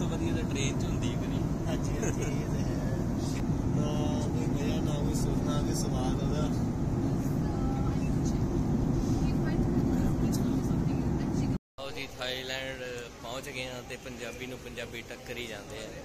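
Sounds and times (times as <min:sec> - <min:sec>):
airliner cabin rumble: 0:00.0 - 0:11.6.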